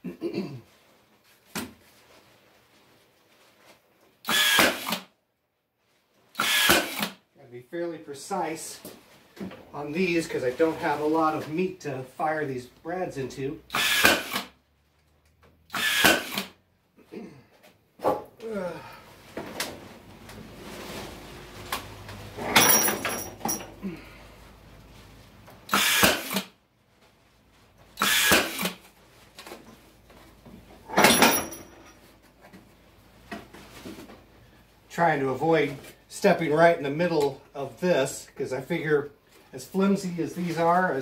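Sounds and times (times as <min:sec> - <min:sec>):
nail gun firing into wood: 0:04.3 - 0:05.1, 0:06.4 - 0:07.2, 0:13.7 - 0:14.5, 0:15.7 - 0:16.5, 0:25.7 - 0:26.5, 0:28.0 - 0:28.8.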